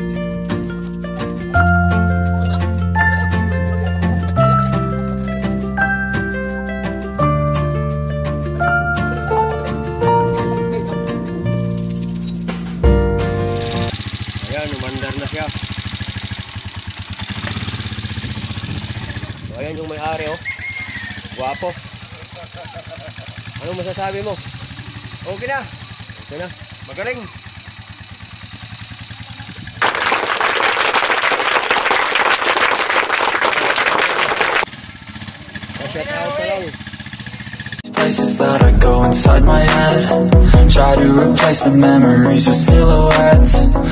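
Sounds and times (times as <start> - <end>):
motorcycle engine idling: 7.8 - 29.8, 34.7 - 41.3.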